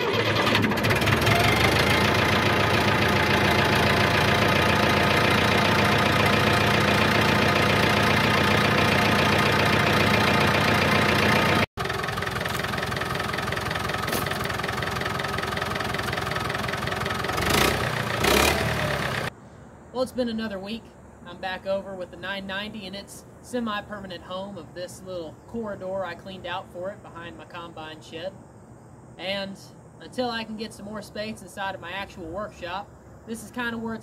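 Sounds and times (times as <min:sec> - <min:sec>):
diesel tractor engine running: 0:00.0 - 0:19.3.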